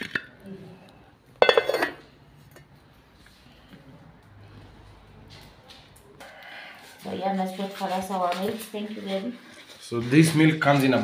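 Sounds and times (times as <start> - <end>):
metal pan clattering: 1.4 - 2.0.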